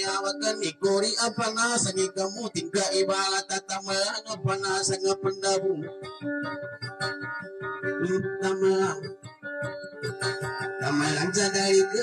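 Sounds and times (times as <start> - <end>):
guitar picking plucked notes: 0.0 - 12.0
sustained keyboard accompaniment: 0.0 - 12.0.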